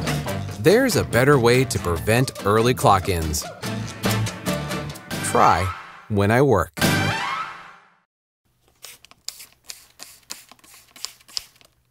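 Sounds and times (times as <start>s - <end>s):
spray bottle squirting: 8.8s - 11.8s.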